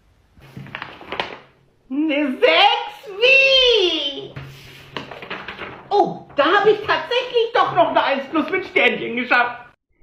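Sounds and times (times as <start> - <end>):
paper scraping: 0.4 - 1.5, 4.4 - 7.8
paper rustling on desk: 0.4 - 1.6, 4.4 - 7.1.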